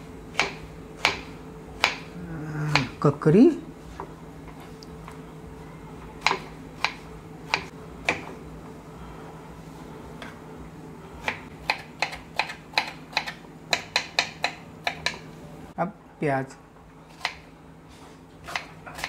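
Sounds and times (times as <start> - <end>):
low steady hum: 0.0 - 19.0
knife chopping on wooden board: 0.3 - 2.1, 2.7 - 2.9, 6.2 - 8.4, 11.2 - 15.2, 17.2 - 17.4, 18.4 - 19.0.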